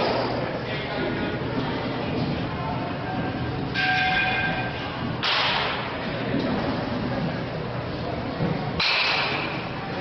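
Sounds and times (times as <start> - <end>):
metal bat hitting ball: 8.8 - 9.5.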